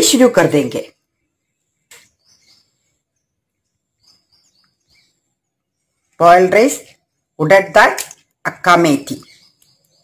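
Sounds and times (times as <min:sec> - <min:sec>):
high bird chirps: 0:00.0 - 0:10.0.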